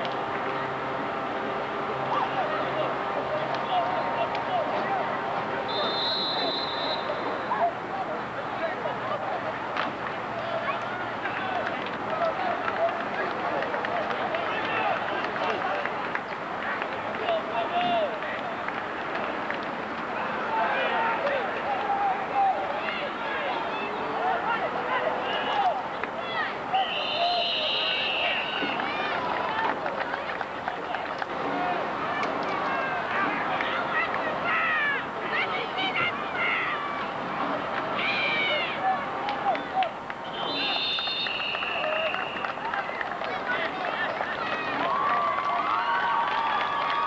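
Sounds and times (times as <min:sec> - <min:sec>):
crowd talking and shouting: 0:00.0 - 0:47.0.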